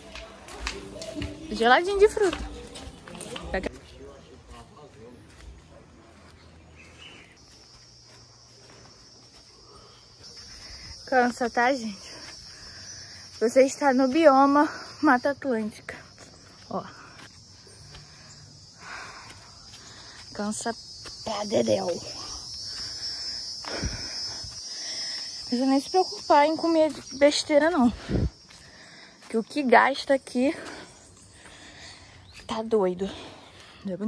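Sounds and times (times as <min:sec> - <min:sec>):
low insect buzz: 0:07.4 - 0:27.2
high-pitched insect drone: 0:07.4 - 0:29.1.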